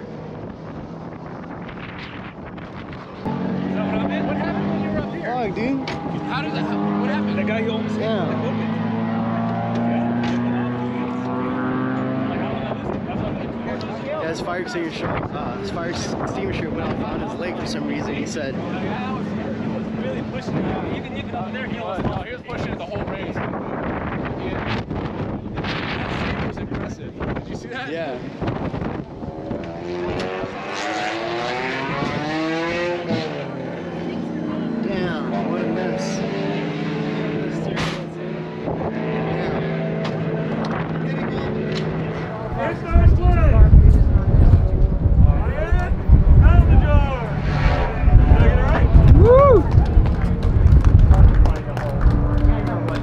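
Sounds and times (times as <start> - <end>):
steady engine drone: 0.0 - 22.0, 29.1 - 53.0.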